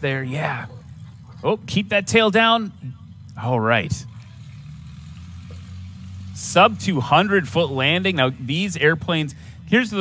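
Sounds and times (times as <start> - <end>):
light aircraft engine idling: 0.0 - 10.0.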